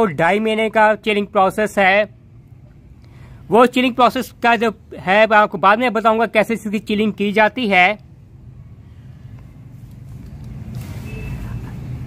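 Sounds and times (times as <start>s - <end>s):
motor vehicle rumbling: 0.0s - 12.0s.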